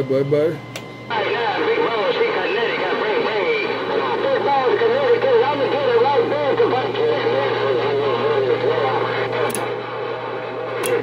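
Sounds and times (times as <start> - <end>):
steady hum: 0.0 - 11.0
radio static: 1.0 - 11.0
garbled voices over radio: 1.1 - 9.5.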